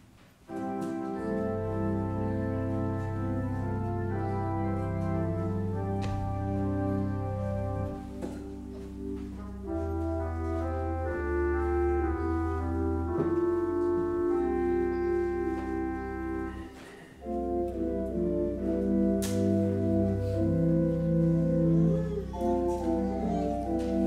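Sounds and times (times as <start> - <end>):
church organ chords: 0.5 - 24.0.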